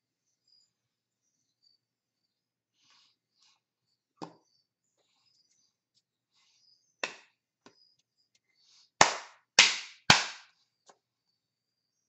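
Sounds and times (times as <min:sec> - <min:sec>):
sharp hand smacks with echo: 0:09.0 - 0:10.5.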